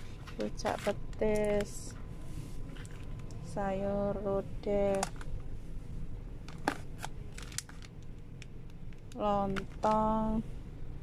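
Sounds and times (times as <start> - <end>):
low steady hum: 0.0 - 11.0
plastic containers clicking and crinkling: 0.3 - 1.7, 4.8 - 5.3, 6.5 - 10.1.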